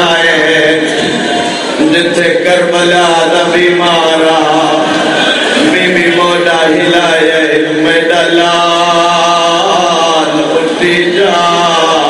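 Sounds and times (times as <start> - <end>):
man chanting into a microphone: 0.0 - 1.2, 1.8 - 12.0.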